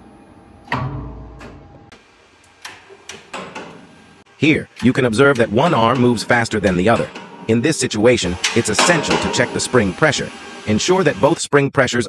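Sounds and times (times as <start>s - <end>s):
elevator brake clacking shut: 0.6s - 1.7s, 2.4s - 11.1s.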